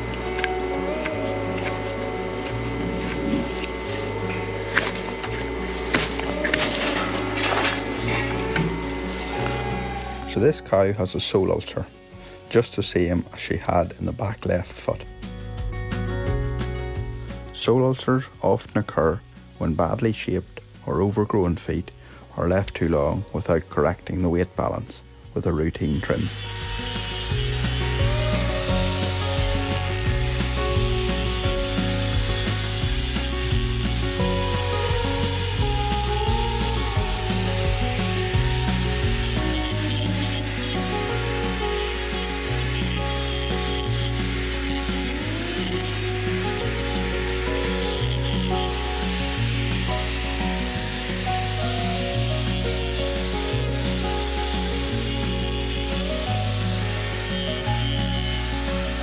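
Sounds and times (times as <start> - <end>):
angle grinder grinding hoof: 0.0 - 11.9, 25.4 - 59.0
background music with bass line: 0.0 - 20.8, 24.8 - 59.0.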